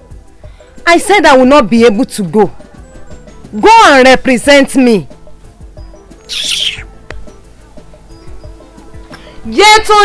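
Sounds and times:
soft film soundtrack music: 0.0 - 9.9.

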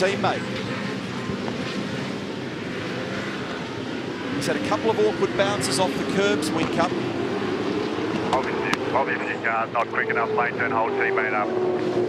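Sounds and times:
broad rushing noise: 0.0 - 12.0
racing car engines droning: 0.0 - 12.0.

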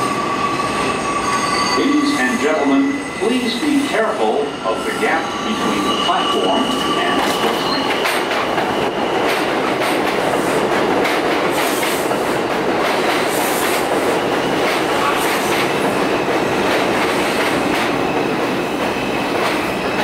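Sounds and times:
subway train rolling: 0.0 - 20.0.

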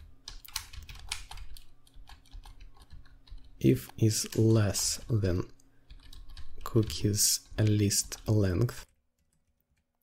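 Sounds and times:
typing on computer keyboard: 0.0 - 4.2, 5.9 - 10.0.

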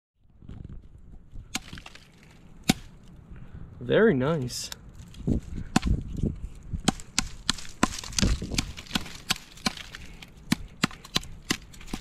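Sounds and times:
hatchet chopping wood: 1.5 - 2.9, 5.7 - 6.0, 6.8 - 12.0.

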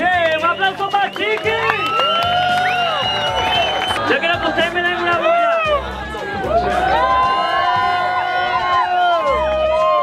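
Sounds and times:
background music: 0.0 - 10.0
crowd cheering: 0.0 - 10.0
long drawn-out whoops: 1.6 - 4.0, 6.5 - 10.0.

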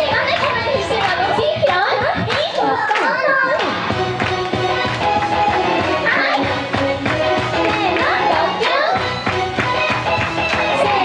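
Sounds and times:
girls talking over microphones: 0.0 - 3.7.

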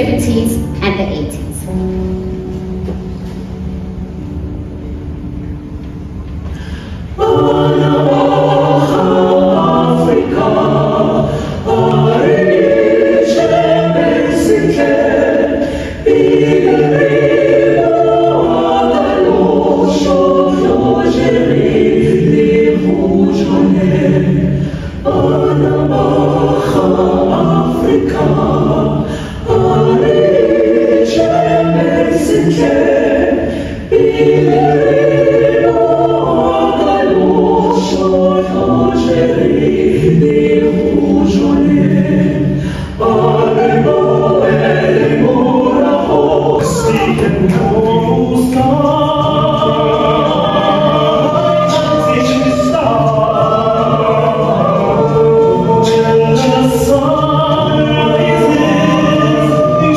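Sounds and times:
choir singing held chords: 0.0 - 59.9.

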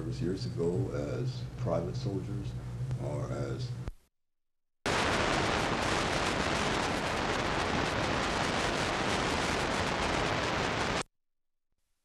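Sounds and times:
videotape static hiss: 4.9 - 11.1.

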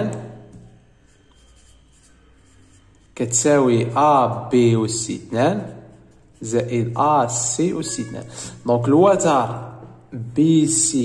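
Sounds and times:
man talking: 0.0 - 0.4, 3.2 - 5.8, 6.4 - 11.0
pen scratching on paper: 0.5 - 8.6.

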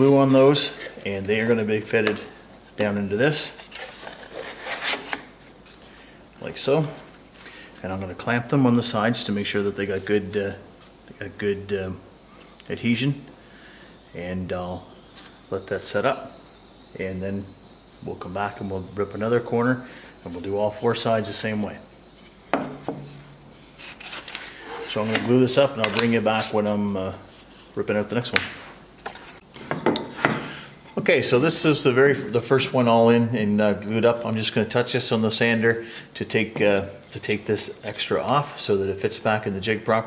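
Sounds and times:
wood strip scraping wood: 3.5 - 5.3, 23.7 - 25.4.

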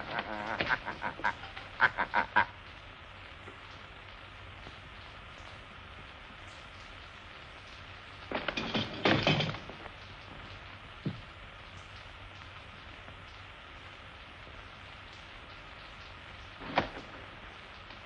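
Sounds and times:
man laughing: 0.0 - 2.6
film soundtrack hiss: 0.0 - 18.0.

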